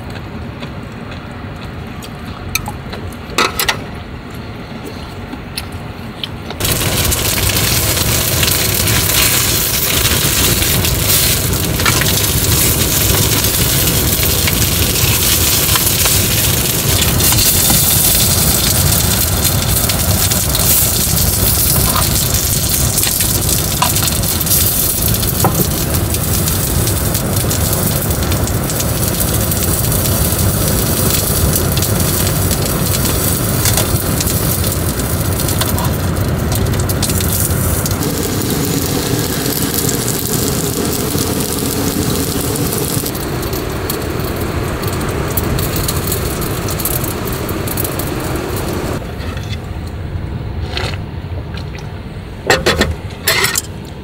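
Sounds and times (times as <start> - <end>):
dumplings sizzling in oil: 6.6 - 49.0.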